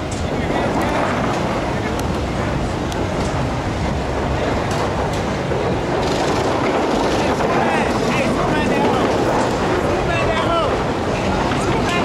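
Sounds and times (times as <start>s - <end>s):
steady loud rumbling: 0.0s - 12.0s.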